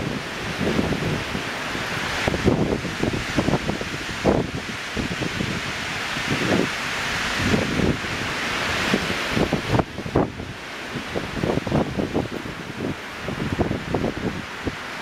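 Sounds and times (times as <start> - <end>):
wind buffeting microphone: 0.0 - 15.0
wind rushing through treetops: 0.0 - 15.0.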